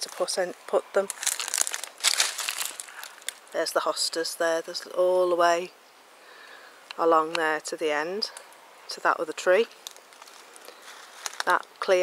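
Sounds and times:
dry twigs and leaves crackling underfoot: 0.0 - 3.7, 9.5 - 12.0.

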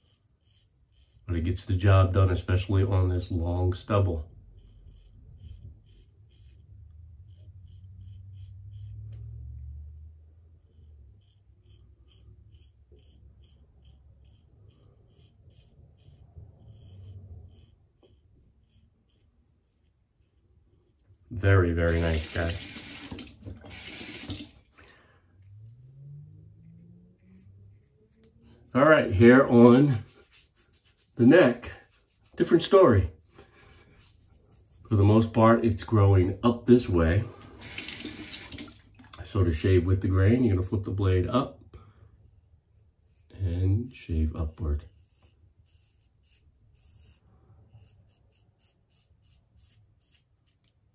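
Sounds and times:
razor scratching through stubble: 0.0 - 9.7, 10.4 - 24.6, 26.6 - 36.9, 43.0 - 50.7.

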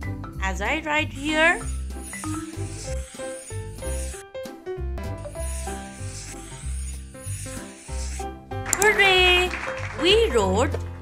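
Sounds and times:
scratchy marker hissing: 1.1 - 4.2, 5.2 - 8.5.

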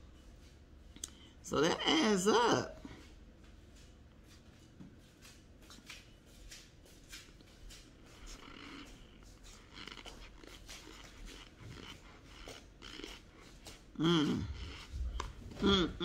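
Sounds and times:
chewing with crunching clicks: 0.9 - 1.3, 5.2 - 16.0.

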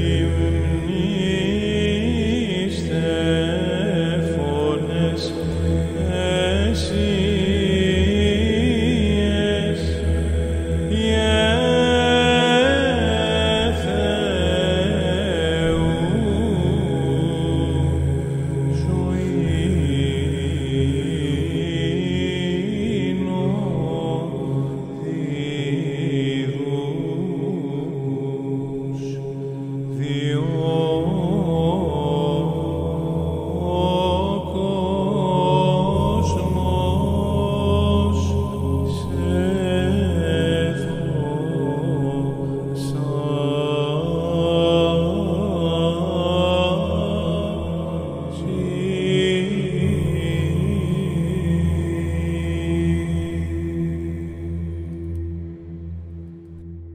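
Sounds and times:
man chanting a slow melody: 0.0 - 54.5
steady low drone: 0.0 - 56.9.

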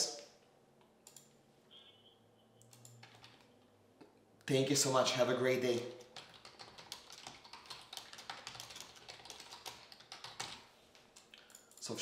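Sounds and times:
computer keyboard typing: 1.0 - 1.4, 2.6 - 3.6, 5.7 - 12.0.

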